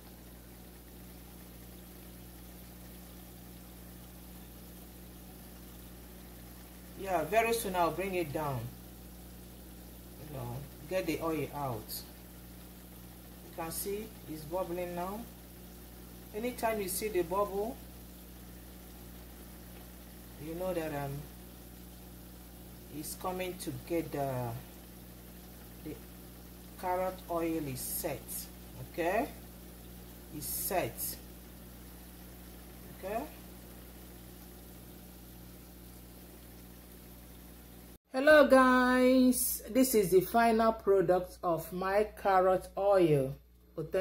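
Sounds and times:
oil bubbling in a pan: 0:00.0 - 0:38.1.

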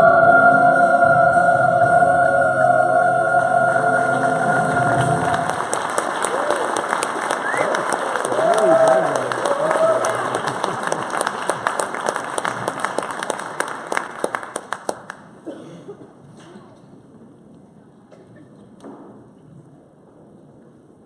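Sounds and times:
held note of song: 0:00.0 - 0:06.2
voices cheering: 0:03.7 - 0:11.9
audience applauding: 0:03.7 - 0:15.3.

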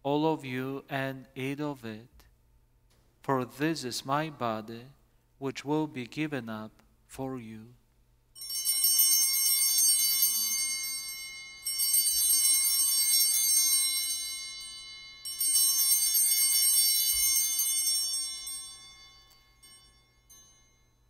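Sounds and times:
altar bells jingling: 0:08.4 - 0:21.0.

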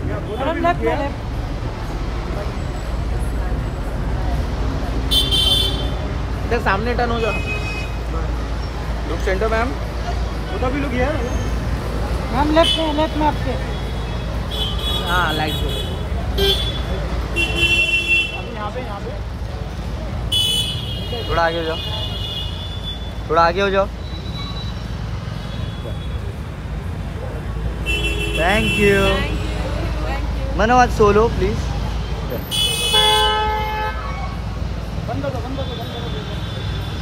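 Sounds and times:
street traffic rumble: 0:00.0 - 0:37.0
vehicle horn blast: 0:27.8 - 0:29.5, 0:32.5 - 0:34.1.

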